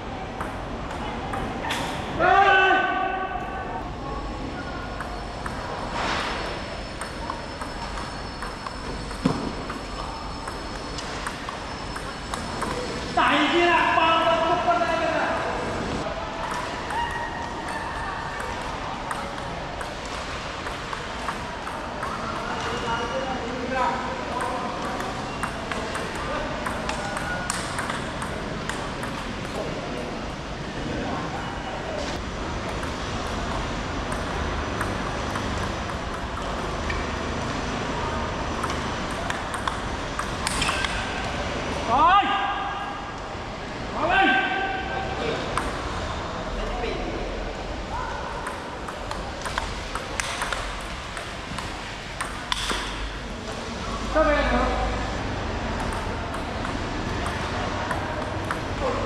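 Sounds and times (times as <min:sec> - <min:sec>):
table tennis ball clicking: 0:05.0 - 0:05.8, 0:06.9 - 0:13.0, 0:16.4 - 0:22.7, 0:24.3 - 0:29.7, 0:32.6 - 0:37.0, 0:38.5 - 0:41.1, 0:45.6 - 0:45.8, 0:48.4 - 0:53.0, 0:55.8 - 0:58.8.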